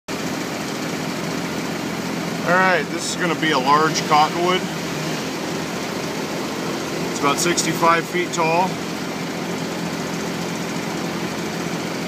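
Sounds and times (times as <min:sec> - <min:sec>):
loader engine idling: 0:00.1 - 0:12.0.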